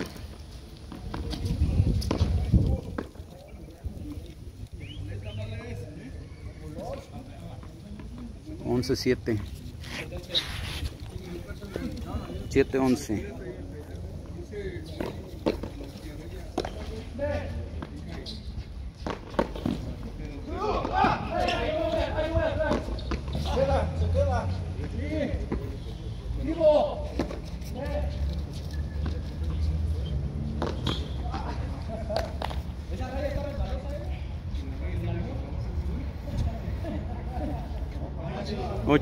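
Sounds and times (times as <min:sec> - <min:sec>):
men talking and calling: 0:00.0 - 0:39.0.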